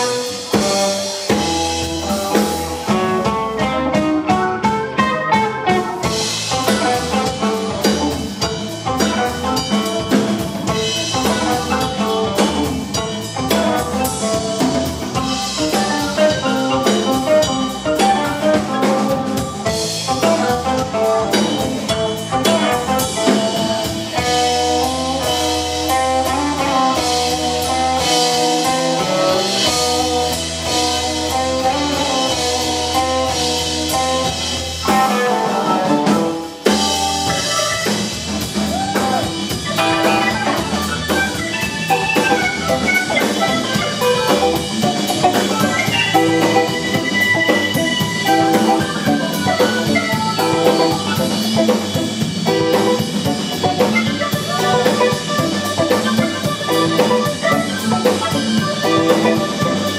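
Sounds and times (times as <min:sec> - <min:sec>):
drum kit: 0:00.0 - 0:59.9
electric guitar: 0:00.0 - 0:59.9
organ playing: 0:00.0 - 0:59.9.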